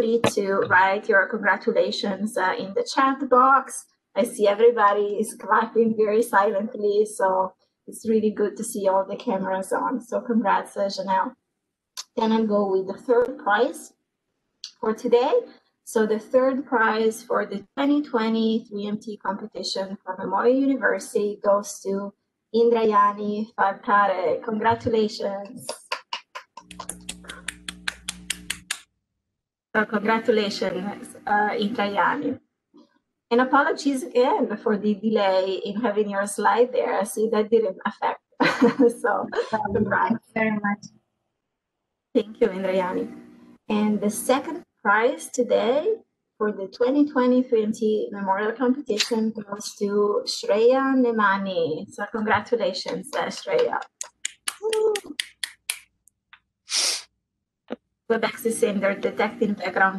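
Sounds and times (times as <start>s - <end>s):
person clapping: 25.6s - 28.8s, 52.9s - 55.8s
faint hum: 29.8s - 32.4s, 33.3s - 40.9s, 42.2s - 55.2s, 58.1s - 59.9s
hissy breathy noise: 56.7s - 57.1s.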